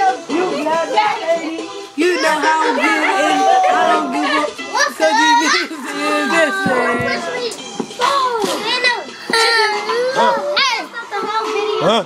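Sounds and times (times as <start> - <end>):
young voices shouting excitedly: 2.0 - 11.8.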